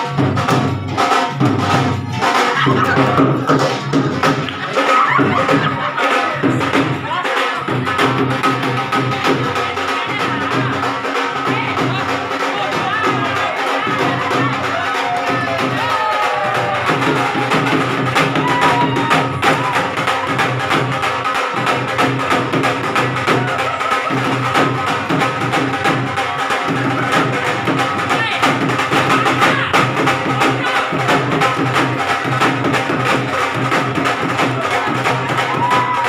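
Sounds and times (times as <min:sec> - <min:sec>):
dhol drums played with sticks: 0:00.0 - 0:36.0.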